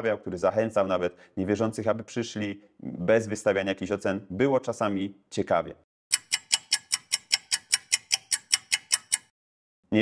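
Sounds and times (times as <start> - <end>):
clock-like ticking: 6.1 - 9.4.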